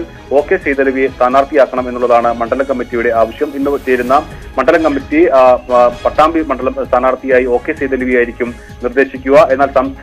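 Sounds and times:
quiet background music: 0.0 - 10.0.

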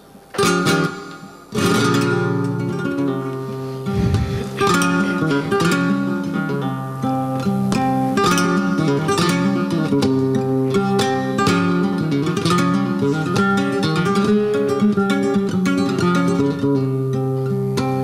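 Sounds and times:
solo flamenco guitar: 0.0 - 18.0.

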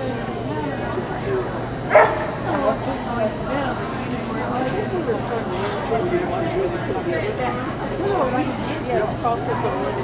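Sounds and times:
background chatter: 0.0 - 10.0
dog barking: 1.9 - 2.4.

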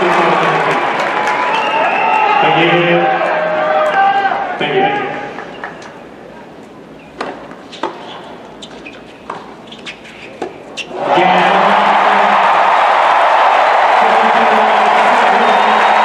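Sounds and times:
crowd cheering and applause: 0.0 - 4.6, 10.9 - 16.0.

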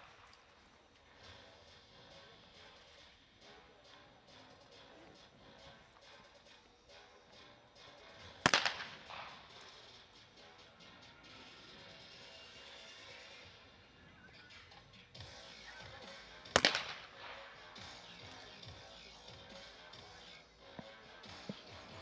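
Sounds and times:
shotgun shots with echo: 8.3 - 9.8, 16.5 - 17.5.

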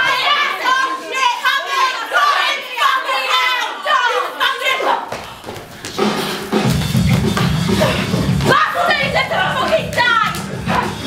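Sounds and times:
crowd shouting: 0.0 - 5.1, 7.8 - 11.0.

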